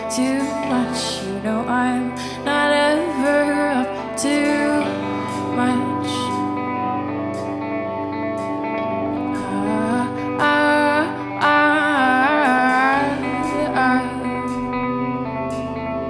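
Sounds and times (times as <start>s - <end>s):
electric guitars: 0.0s - 16.0s.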